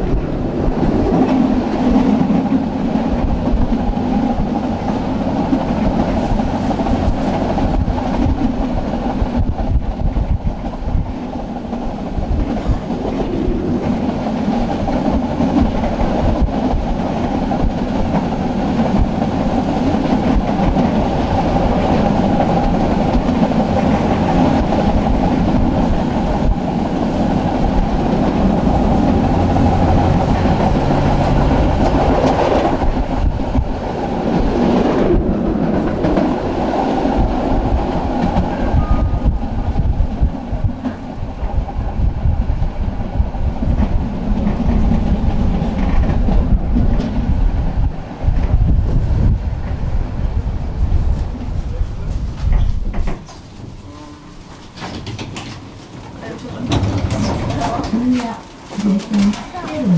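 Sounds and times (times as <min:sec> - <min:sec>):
tram wheels rumbling on rail: 0:00.0 - 0:59.9.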